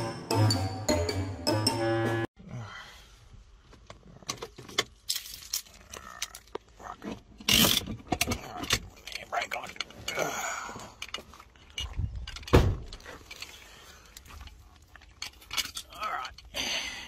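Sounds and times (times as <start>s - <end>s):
handling knocks and rattles: 10.8s - 16.5s.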